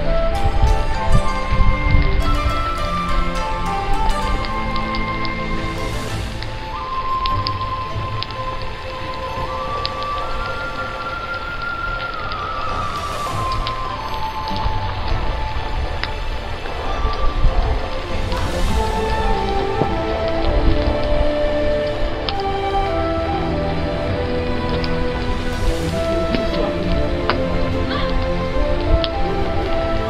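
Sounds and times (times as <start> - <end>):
slow instrumental music: 0.0 - 30.0
wood fire crackling and popping: 3.4 - 30.0.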